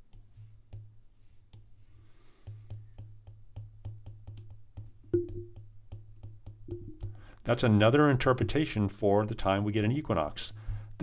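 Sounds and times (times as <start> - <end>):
stylus tapping on glass screen: 2.4 - 7.2.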